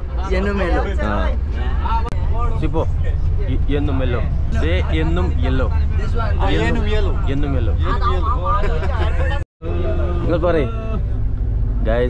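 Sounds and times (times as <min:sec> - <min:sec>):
bus rumbling: 0:00.0 - 0:12.0
men talking: 0:00.2 - 0:11.2, 0:11.8 - 0:12.0.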